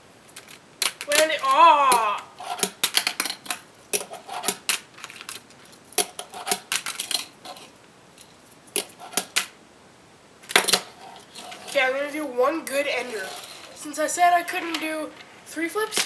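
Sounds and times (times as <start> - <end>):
fingerboard clicking and clacking: 8.8 - 9.5.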